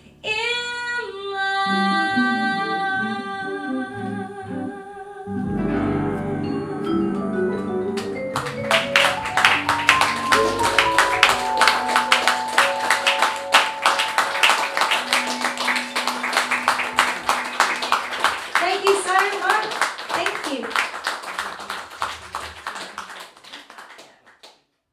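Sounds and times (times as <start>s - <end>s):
band held notes ringing: 5.6s - 18.6s
audience clapping: 8.0s - 24.7s
person speaking: 17.8s - 20.7s.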